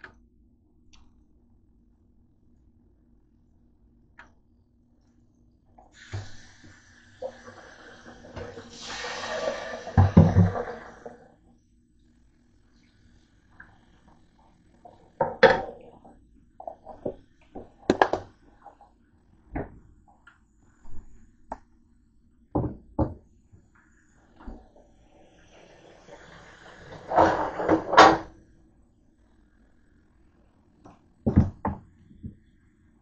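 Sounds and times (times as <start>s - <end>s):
kitchen items knocking and clattering: 15.2s - 15.9s.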